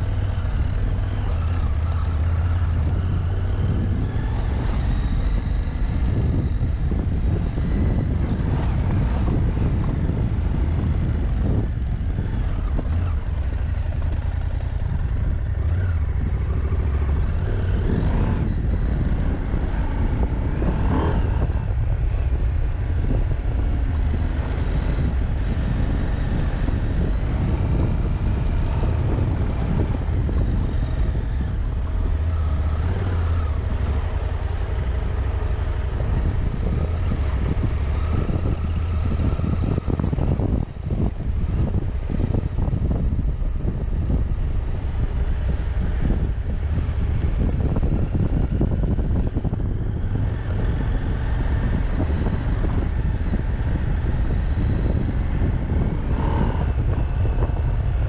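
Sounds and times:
motorcycle engine revving: 0.0 - 58.0
wind rumble on microphone: 0.0 - 58.0.

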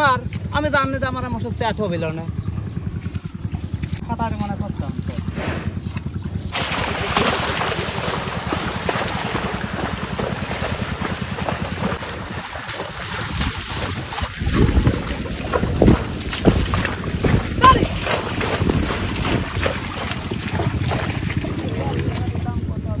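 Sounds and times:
wind buffeting microphone: 0.0 - 23.0
water and mud splashing: 3.0 - 23.0.

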